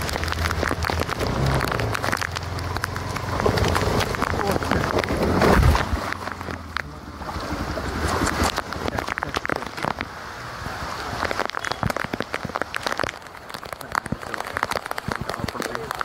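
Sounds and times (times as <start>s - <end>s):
feet wading through water: 0.0s - 16.0s
floodwater rushing: 0.0s - 16.0s
heavy rain: 0.0s - 16.0s.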